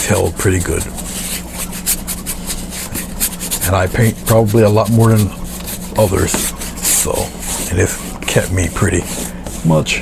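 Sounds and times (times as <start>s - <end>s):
paintbrush scrubbing canvas: 0.0s - 10.0s.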